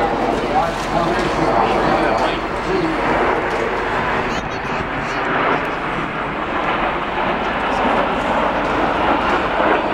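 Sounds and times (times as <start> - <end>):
crowd voices: 0.0 - 9.9
jet aircraft flying overhead: 0.0 - 9.9.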